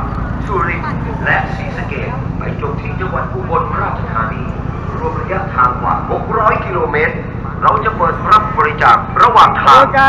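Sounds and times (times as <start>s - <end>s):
people talking: 0.0s - 10.0s
scooter engine idling: 0.0s - 10.0s.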